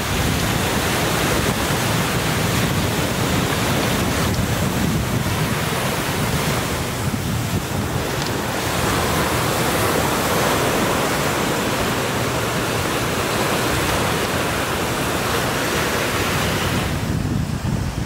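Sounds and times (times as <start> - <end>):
ocean surf washing onto beach: 0.0 - 18.0
wind rumbling on microphone: 0.0 - 18.0.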